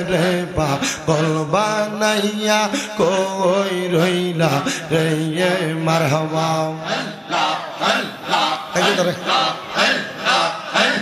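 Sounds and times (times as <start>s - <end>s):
man singing a chant: 0.0s - 11.0s.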